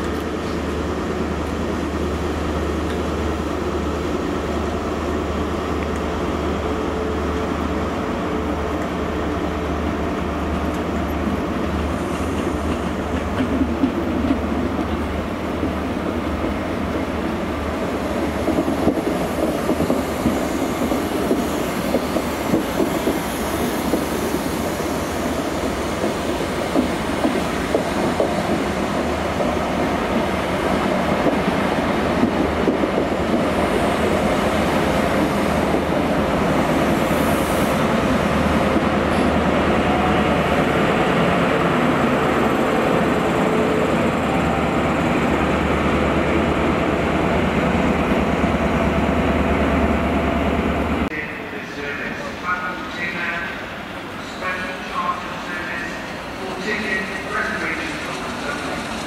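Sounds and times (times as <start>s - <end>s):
train coaches rumbling: 0.0s - 59.0s.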